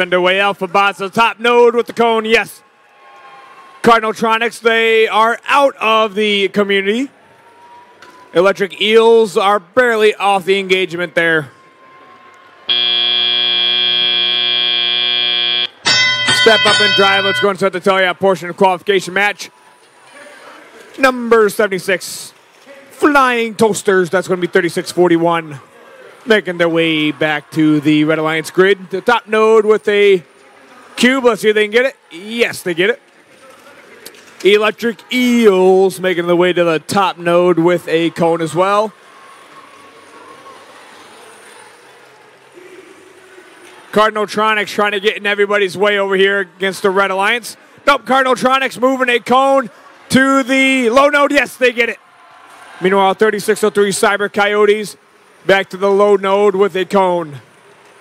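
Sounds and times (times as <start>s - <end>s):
crowd hubbub: 10.0s - 56.0s
faint hums: 12.7s - 15.8s
harsh buzzer tone: 12.7s - 17.5s.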